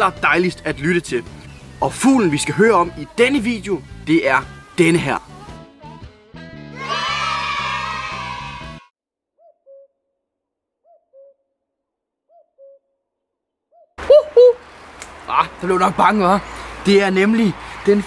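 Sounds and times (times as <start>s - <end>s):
music: 0.0s - 8.9s
cuckoo calling: 9.4s - 10.0s, 10.8s - 11.5s, 12.3s - 13.0s, 13.7s - 15.2s.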